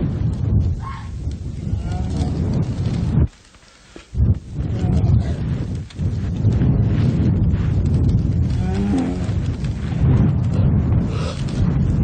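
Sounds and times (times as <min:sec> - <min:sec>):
bear growling: 0:08.5 - 0:09.4.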